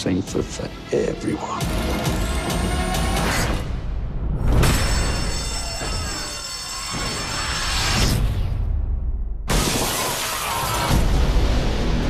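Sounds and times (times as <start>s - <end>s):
film score: 0.0s - 12.0s
loud crash: 9.4s - 12.0s.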